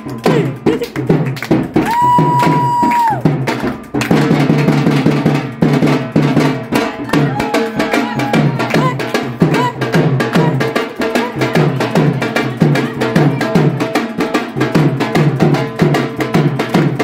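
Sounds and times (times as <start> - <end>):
drums played fast: 0.0 - 17.0.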